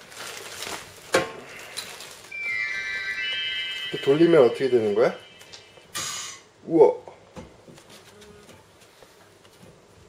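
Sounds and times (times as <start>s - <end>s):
bright chiming jingle: 2.3s - 5.5s.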